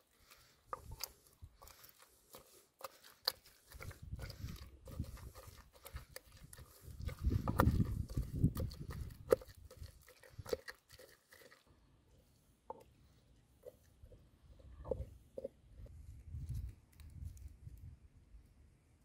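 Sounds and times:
wet mashing thuds: 0.2 - 11.5.

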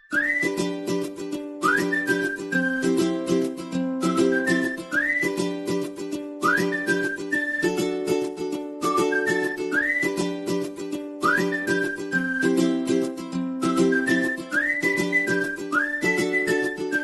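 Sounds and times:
whistled melody over a beat: 0.0 - 17.0.

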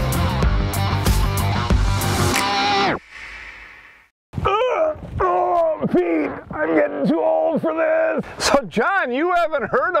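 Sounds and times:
music: 0.0 - 3.0
man groaning with effort: 4.4 - 7.1.

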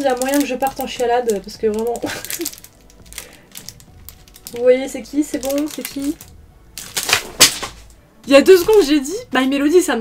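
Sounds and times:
plastic packaging crinkling: 0.0 - 8.9.

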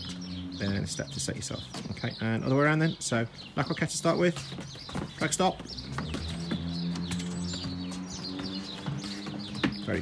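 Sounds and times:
small birds chirping: 0.0 - 10.0.

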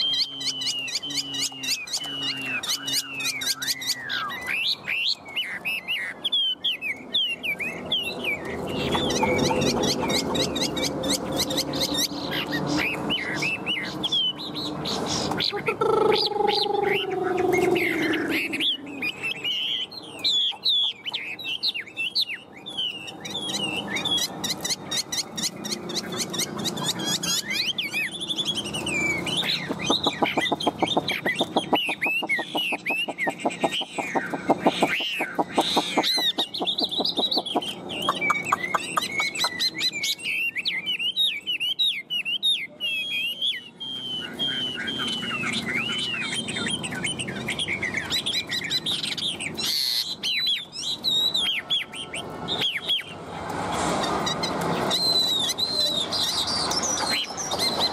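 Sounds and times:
bird singing whistled phrases: 0.0 - 11.2, 26.8 - 53.2
bird rapid rattling notes: 29.4 - 39.5.

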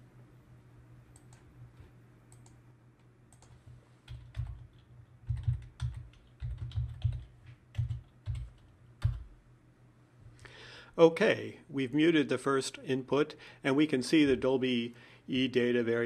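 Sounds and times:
faint steady hum: 0.0 - 16.0
typing on computer keyboard: 3.3 - 9.3.

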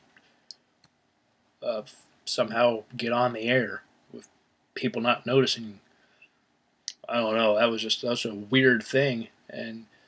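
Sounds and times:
man talking: 1.6 - 4.2, 4.8 - 5.8, 6.9 - 9.9.

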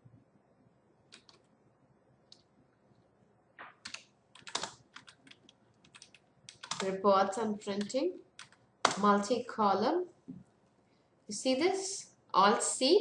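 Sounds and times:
computer keyboard typing: 1.1 - 1.5, 3.6 - 9.3.

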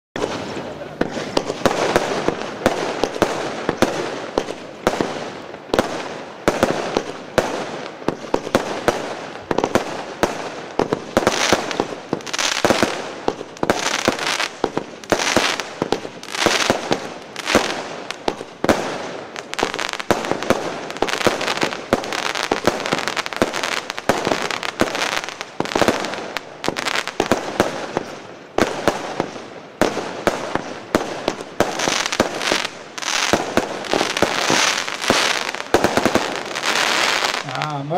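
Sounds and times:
fireworks launching and bursting: 0.2 - 37.9
fireworks sizzle: 0.2 - 37.9.

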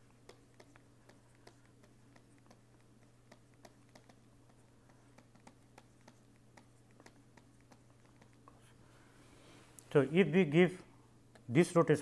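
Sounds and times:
low steady hum: 0.0 - 12.0
man speaking: 9.9 - 10.9, 11.5 - 12.0.

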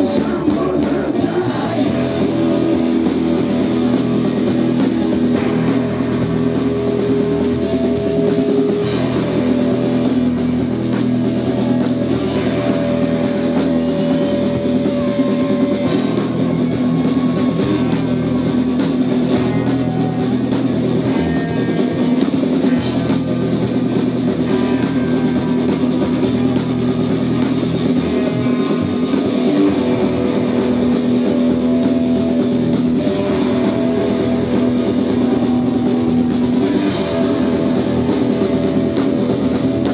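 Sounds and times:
bass guitar: 0.0 - 39.9
drum kit: 0.0 - 39.9
electric guitar: 0.0 - 39.9.

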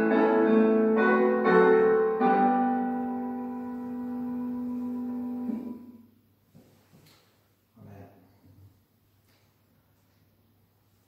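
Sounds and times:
keyboard chord: 0.0 - 6.1.

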